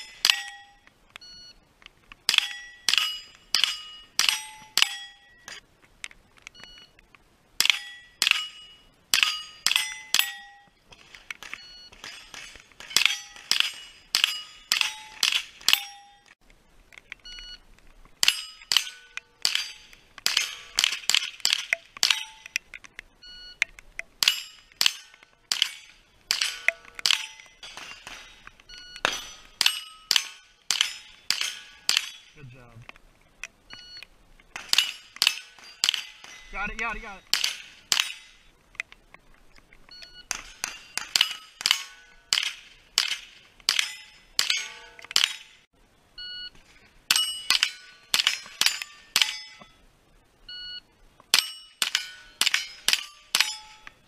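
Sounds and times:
steel plate ringing: 0.0 - 0.9, 2.3 - 5.6, 7.6 - 10.8, 11.9 - 16.4, 18.2 - 22.6, 24.2 - 32.8, 34.6 - 38.5, 40.2 - 45.7, 47.1 - 49.8, 51.3 - 54.0
rifle shots: 11.0 - 16.0, 18.2 - 22.5, 24.2 - 32.6, 34.6 - 38.4, 40.3 - 45.6.

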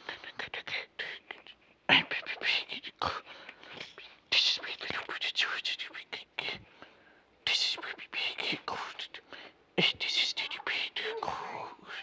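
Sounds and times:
person whispering: 0.0 - 6.7, 7.4 - 12.0.

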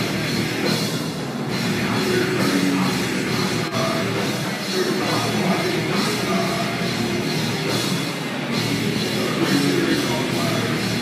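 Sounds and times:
heavy metal band playing live: 0.0 - 11.0.

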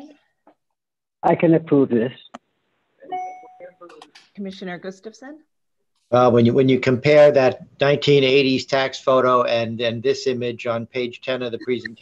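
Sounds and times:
electronic chime: 3.1 - 3.9.

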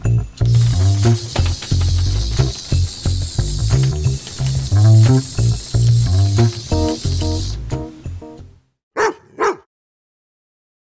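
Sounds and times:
background music: 0.0 - 8.7
dog barking: 9.0 - 9.7.

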